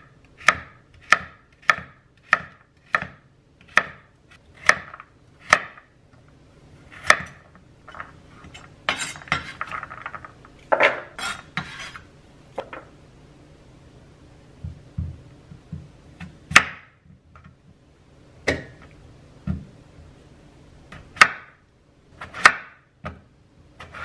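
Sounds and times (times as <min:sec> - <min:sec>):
knife chopping on wooden board: 0:00.4 - 0:05.8, 0:15.0 - 0:17.0, 0:20.9 - 0:21.5, 0:22.2 - 0:23.2
knife scraping board: 0:06.8 - 0:10.0, 0:11.0 - 0:12.1, 0:23.8 - 0:24.0.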